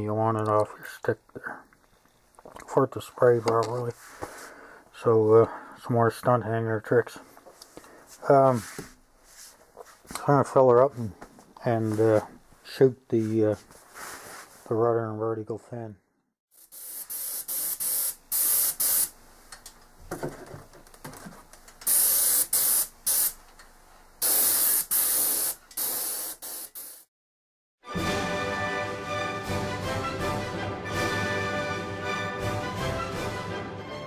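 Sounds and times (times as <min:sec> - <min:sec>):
paint spray gun hissing: 0:16.6 - 0:19.2, 0:21.8 - 0:23.4, 0:24.2 - 0:27.1
background music: 0:27.8 - 0:34.0.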